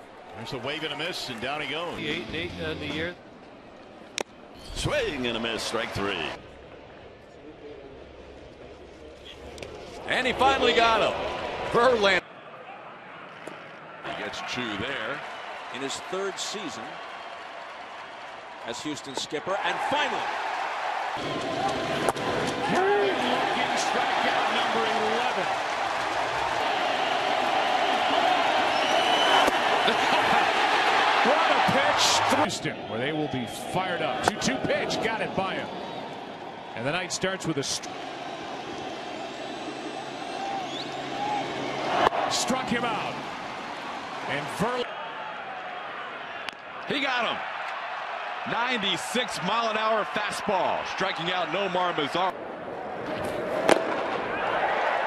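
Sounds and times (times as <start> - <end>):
crowd cheering: 0.0 - 2.5, 3.5 - 7.1, 9.6 - 55.0.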